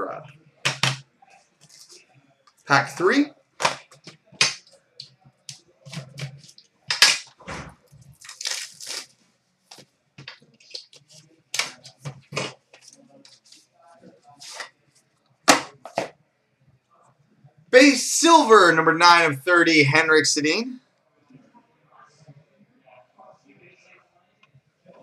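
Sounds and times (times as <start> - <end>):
card pack wrapper crackling: 8.1 - 9.1
wrapper tearing rustle: 8.1 - 9.1.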